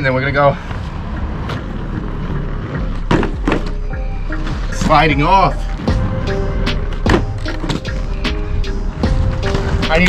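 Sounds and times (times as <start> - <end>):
background music: 0.0 - 10.0
inline skate wheels rolling on asphalt: 0.1 - 5.9, 9.0 - 10.0.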